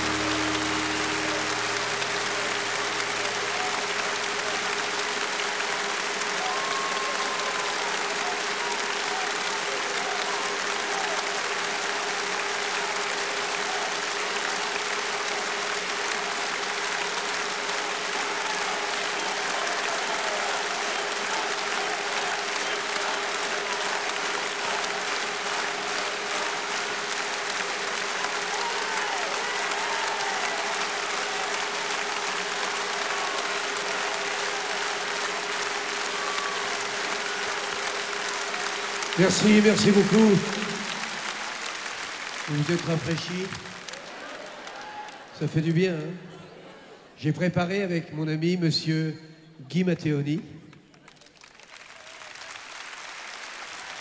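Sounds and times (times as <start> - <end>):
audience applauding: 0.0 - 45.7, 50.8 - 54.0.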